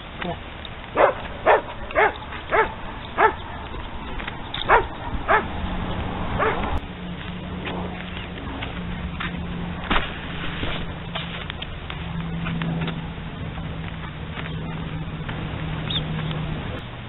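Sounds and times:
dog barking: 0:01.0 - 0:03.6, 0:04.6 - 0:05.5, 0:06.4 - 0:06.7.

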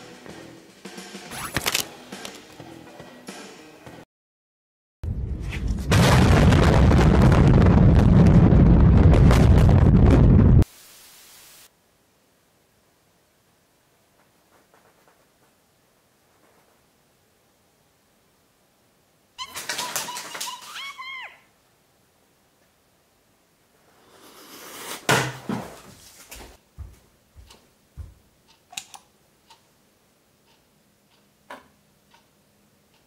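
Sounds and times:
rumble crackling with debris: 0:05.0 - 0:10.6
building explosion blast: 0:05.1 - 0:10.7
low steady noise: 0:10.7 - 0:19.4, 0:21.5 - 0:24.2
high squeaky sliding tone: 0:19.4 - 0:21.4.

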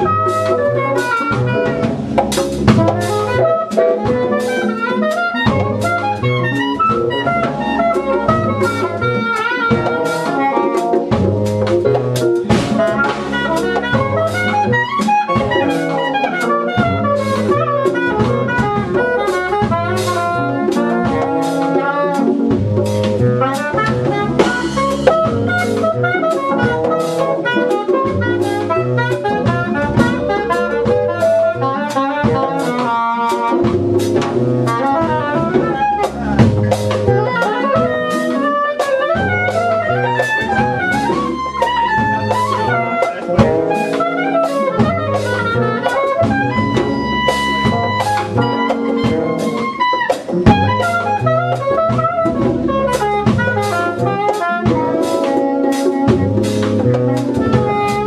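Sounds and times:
soprano saxophone: 0:00.0 - 0:11.2, 0:12.7 - 0:22.6, 0:23.3 - 0:58.0
congas: 0:00.0 - 0:58.0
drum kit and cymbals: 0:00.0 - 0:58.0
electric bass line: 0:00.0 - 0:58.0
electric piano: 0:00.0 - 0:58.0.

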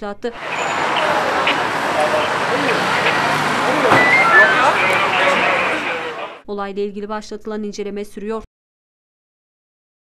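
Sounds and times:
people talking in crowd: 0:00.4 - 0:06.4
road traffic: 0:00.4 - 0:06.4.

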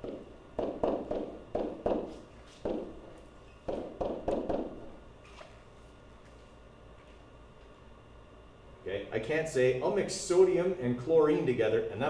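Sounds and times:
stylus knocking on touchscreen: 0:03.7 - 0:04.8.

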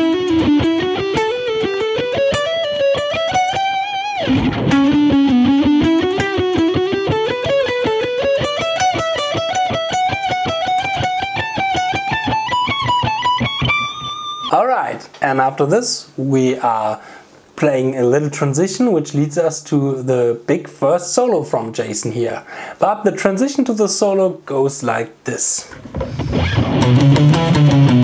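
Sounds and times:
electric guitar scale runs: 0:00.0 - 0:14.5, 0:26.3 - 0:28.0.

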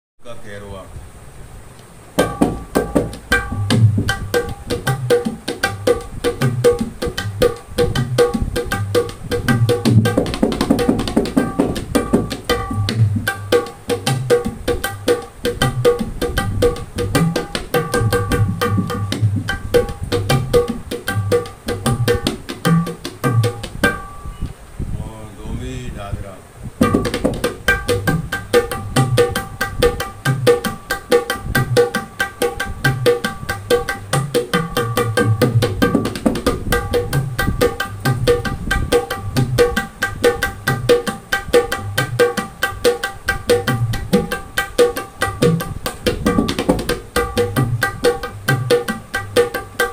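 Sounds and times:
barrel drum played by hand: 0:02.2 - 0:24.3, 0:26.8 - 0:49.9.

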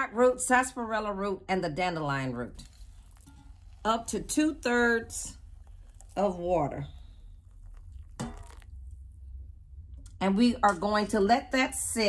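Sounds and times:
hot water pouring into jug: 0:02.5 - 0:09.4.

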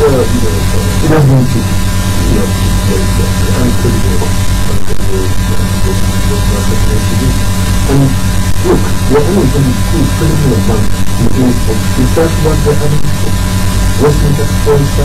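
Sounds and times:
electrical hum and buzz: 0:00.0 - 0:15.0
talk show speech: 0:00.0 - 0:15.0.

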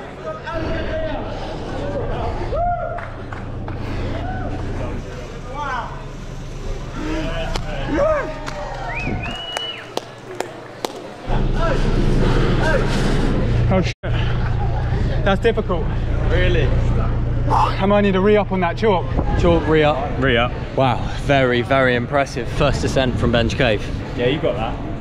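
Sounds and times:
onlookers shouting and cheering: 0:00.3 - 0:05.0, 0:06.9 - 0:11.9
steady low rumble: 0:00.7 - 0:09.8, 0:10.6 - 0:25.0.

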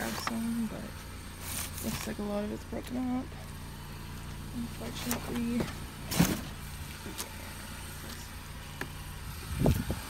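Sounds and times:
vehicle engine humming: 0:00.0 - 0:10.0.

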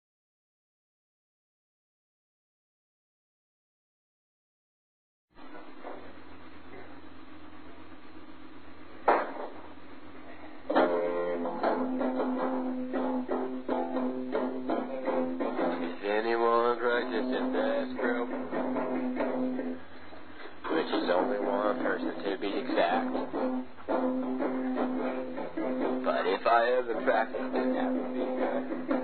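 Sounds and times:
hum and hiss: 0:05.4 - 0:29.0
strummed guitar chords: 0:10.7 - 0:20.0, 0:20.6 - 0:29.0.

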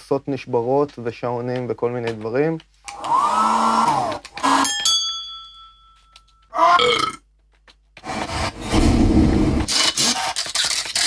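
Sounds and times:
glass struck and ringing: 0:04.6 - 0:06.4.

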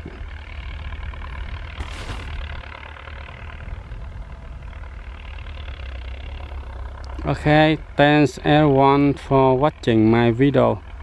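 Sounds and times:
tractor diesel engine running: 0:00.0 - 0:11.0.

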